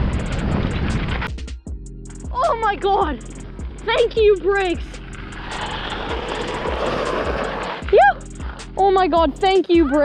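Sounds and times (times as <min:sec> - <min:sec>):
wind on microphone: 0:00.0 - 0:01.3
bike tyres rushing over gravel: 0:00.0 - 0:01.4, 0:02.7 - 0:09.3
background music with steady beat: 0:01.3 - 0:10.0.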